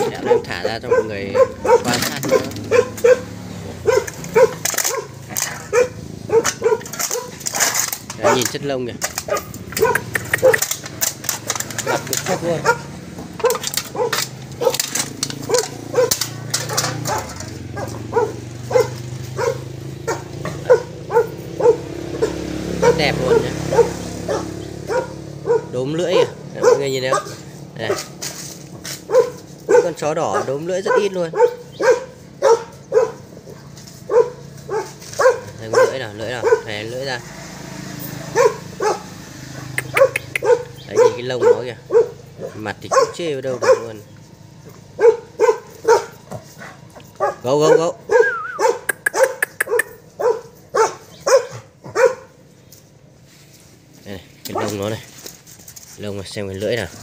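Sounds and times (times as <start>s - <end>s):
dog yapping: 0.0s - 37.1s, 38.0s - 52.4s, 54.5s - 55.0s
sharp clicks: 9.0s - 12.4s, 39.7s - 40.8s, 48.9s - 50.0s.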